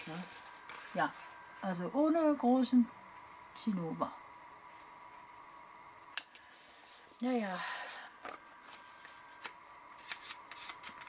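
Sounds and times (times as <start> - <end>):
paper rustling: 0.0 - 1.4, 6.5 - 11.0
quiet steady hum: 0.0 - 11.0.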